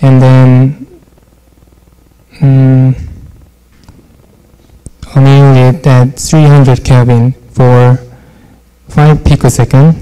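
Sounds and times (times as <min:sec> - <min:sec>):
faint low hum: 0:00.0 - 0:10.0
person saying um: 0:02.3 - 0:03.4.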